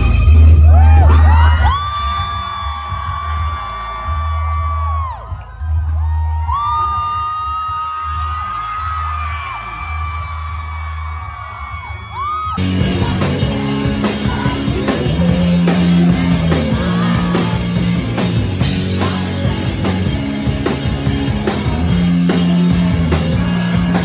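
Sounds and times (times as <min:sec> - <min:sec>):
loud punk rock music: 0:00.0 - 0:03.1, 0:11.8 - 0:24.0
crowd yelling and whooping: 0:00.0 - 0:24.0.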